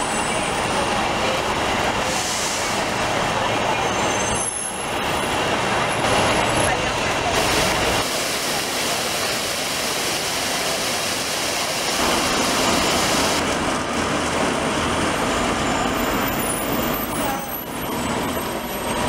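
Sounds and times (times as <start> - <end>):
street traffic: 0.0 - 19.0.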